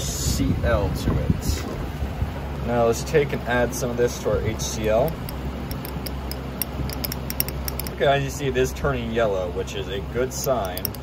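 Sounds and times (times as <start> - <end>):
steady low hum: 0.0 - 11.0
glass rod ticking in test tube: 5.0 - 8.0, 10.4 - 11.0.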